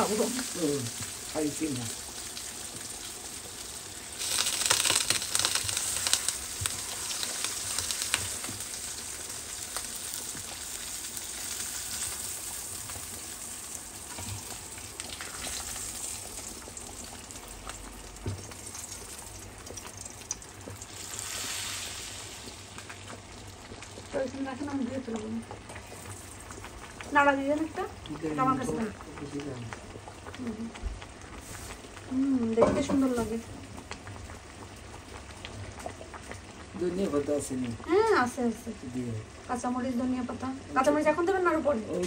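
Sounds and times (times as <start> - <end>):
fish sizzling in hot oil: 0.0 - 42.0
pot boiling: 0.0 - 42.0.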